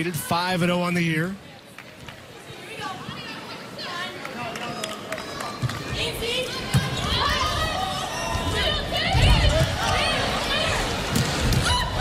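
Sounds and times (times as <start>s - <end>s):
crowd cheering and shouting: 2.7s - 12.0s.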